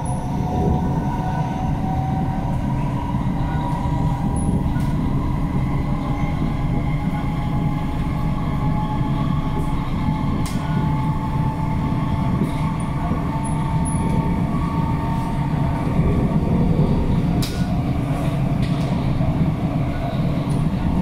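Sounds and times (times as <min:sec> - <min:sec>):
train wheels rumbling on track: 0:00.0 - 0:21.0.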